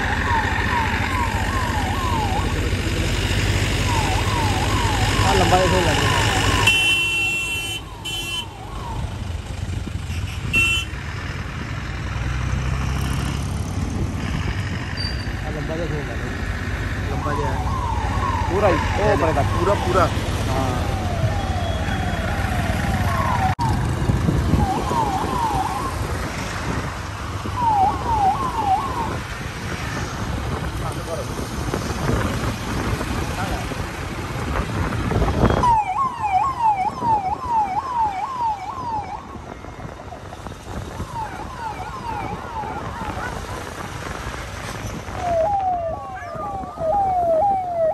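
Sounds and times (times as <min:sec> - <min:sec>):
police sirens whooping: 0:00.0 - 0:06.8, 0:07.6 - 0:09.7, 0:17.0 - 0:29.7, 0:35.4 - 0:47.9
vehicle engines and tyres rumbling: 0:00.0 - 0:47.9.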